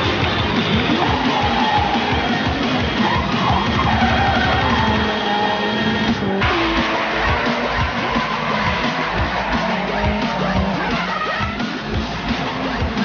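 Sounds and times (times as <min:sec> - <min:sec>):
rock music with electric guitar: 0:00.0 - 0:13.0.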